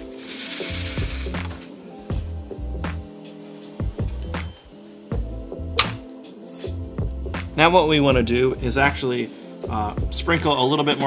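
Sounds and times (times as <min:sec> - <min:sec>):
brief hiss: 0:00.0 - 0:01.8
background music with steady beat: 0:00.0 - 0:11.0.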